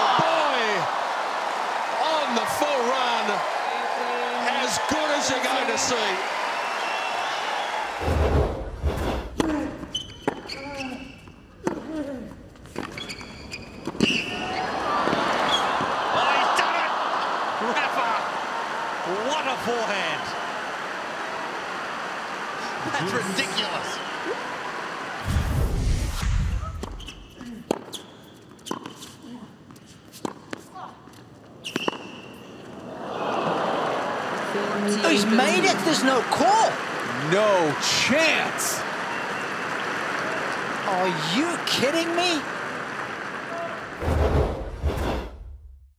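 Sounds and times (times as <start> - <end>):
crowd noise: 0.0 - 13.2, 13.8 - 27.7, 30.8 - 44.8
shoe squeaks: 9.8 - 11.6, 12.7 - 14.6, 26.7 - 29.2, 31.5 - 32.6
deep whooshing boom: 25.2 - 26.7.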